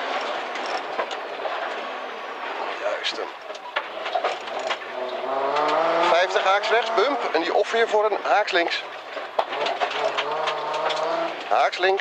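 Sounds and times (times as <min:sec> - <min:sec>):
rally car engine from inside cabin: 0:04.8 - 0:07.5, 0:09.5 - 0:11.5.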